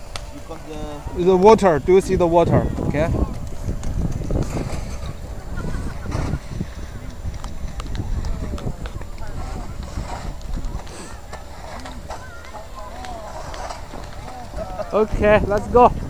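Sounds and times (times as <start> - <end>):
people talking faintly: 0.0 - 16.0
sled runners grating on ice: 0.0 - 16.0.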